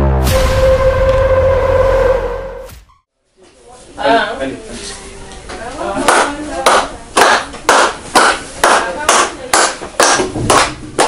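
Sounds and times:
hands clapping in rhythm: 6.1 - 11.0.

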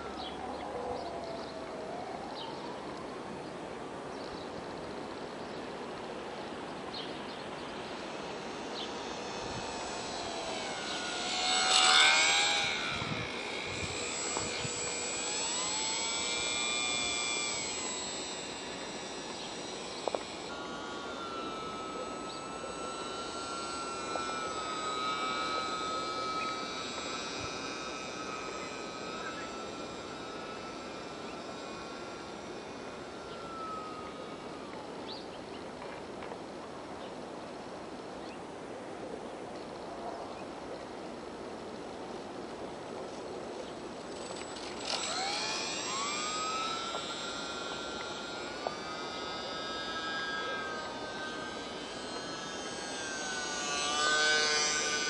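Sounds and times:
model plane motor whine: 0.0 - 55.0.

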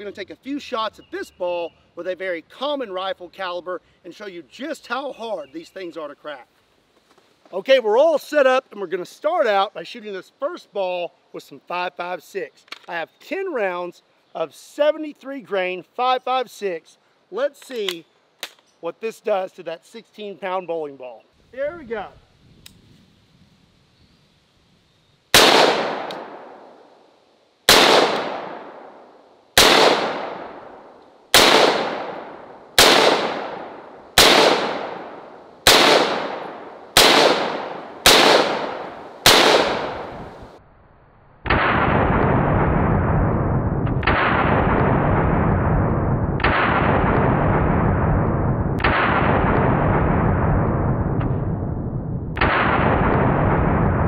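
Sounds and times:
rifle shots echoing: 25.3 - 26.9, 27.7 - 40.4, 41.4 - 48.2, 48.8 - 51.5, 52.3 - 54.0
slowed-down low boom: 39.9 - 54.0.

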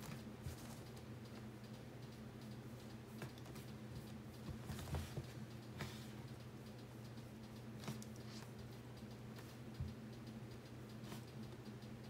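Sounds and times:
light taps and clicks: 0.0 - 12.0
steady low hum: 0.0 - 12.0.

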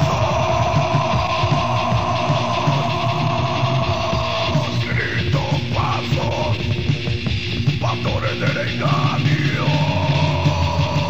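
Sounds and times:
distorted electric guitars: 0.0 - 11.0
steady drum beat: 0.0 - 11.0.

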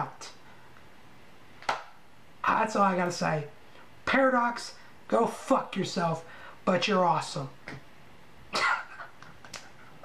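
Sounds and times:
man coughing breath: 8.5 - 9.1.

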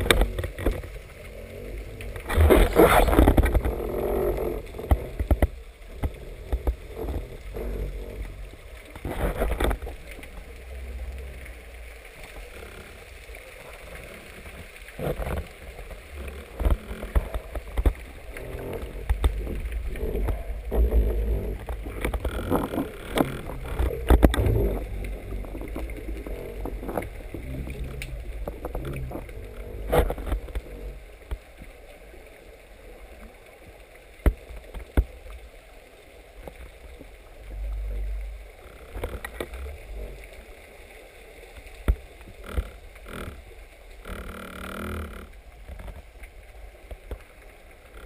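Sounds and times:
low underwater rumble: 0.0 - 48.0.

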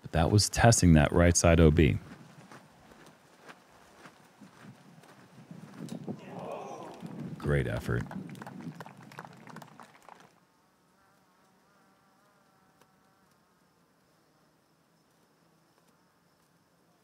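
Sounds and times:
faint wavering insect buzz: 10.4 - 17.0.

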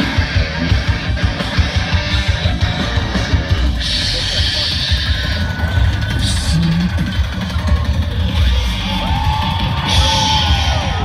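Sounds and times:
hard rock band playing live: 0.0 - 11.0
pounding drums: 0.0 - 11.0.

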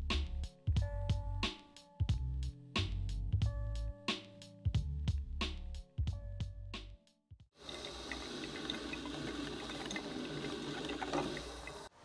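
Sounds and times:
coffee maker water bubbling: 7.6 - 11.9.

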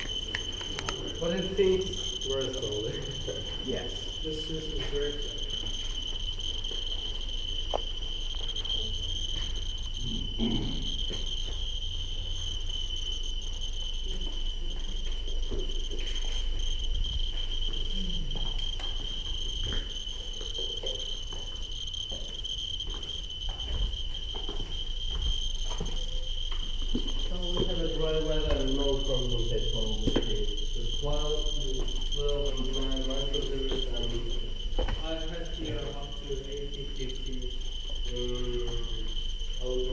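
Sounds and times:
geiger counters clicking: 0.0 - 39.9.

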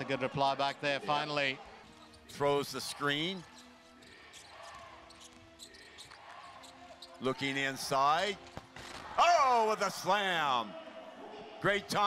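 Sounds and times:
low arena background: 0.0 - 12.0.

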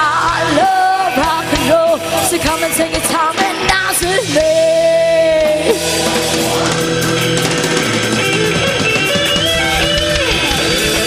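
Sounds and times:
electric guitar bending notes: 0.0 - 11.0
rock band playing: 0.0 - 11.0.

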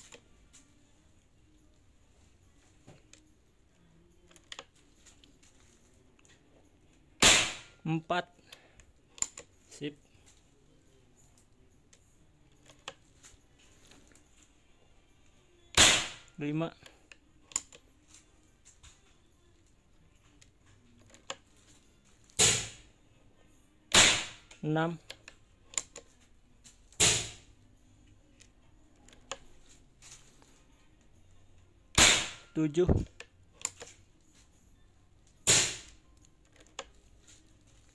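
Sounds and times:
air rifle shot: 7.2 - 7.7, 15.8 - 16.2, 23.9 - 24.4, 32.0 - 32.5.

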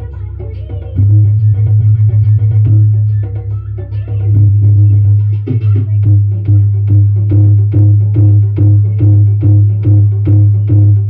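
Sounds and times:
heavy bass line: 0.0 - 11.0
loud music through speakers: 0.0 - 11.0.

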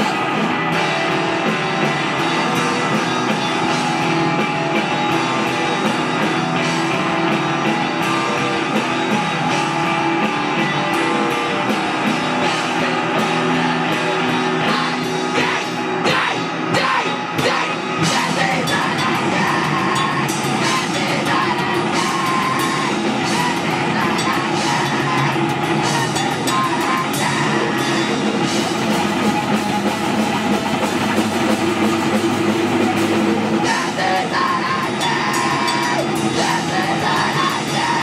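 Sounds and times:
person singing: 0.0 - 28.9, 32.1 - 38.0
bass guitar: 0.0 - 38.0
drum kit: 0.0 - 38.0
electric guitar: 0.0 - 38.0.

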